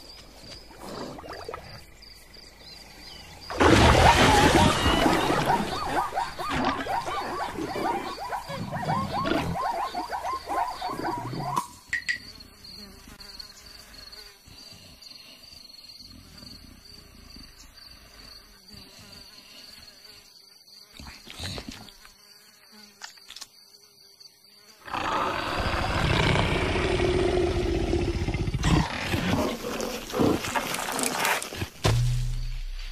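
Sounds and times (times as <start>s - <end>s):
insect buzzing: 0.0s - 32.8s
loud noisy cartoon effects: 3.5s - 8.0s
big cat growling: 24.8s - 31.7s.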